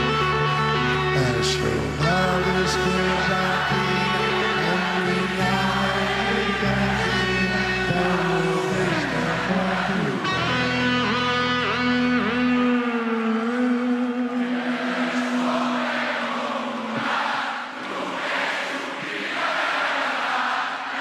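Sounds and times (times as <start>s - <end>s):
bass guitar: 0.0s - 14.4s
electric guitar bending note: 0.0s - 14.5s
crowd singing along: 0.8s - 21.0s.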